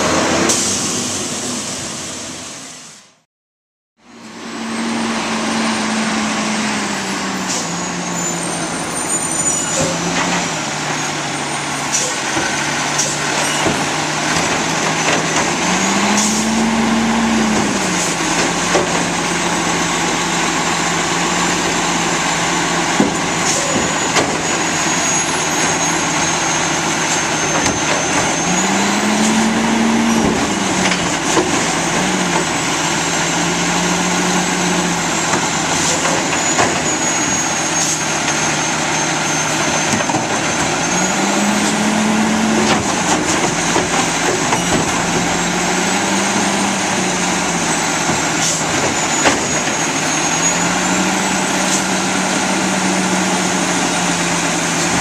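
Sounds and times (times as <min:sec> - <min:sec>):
garbage truck engine revving: 0:04.1 - 0:55.0
cart and trash clattering: 0:07.4 - 0:20.4, 0:21.2 - 0:55.0.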